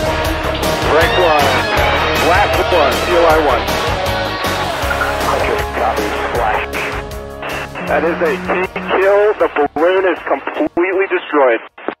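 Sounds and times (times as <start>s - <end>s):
voice over radio link: 5.2s - 12.0s.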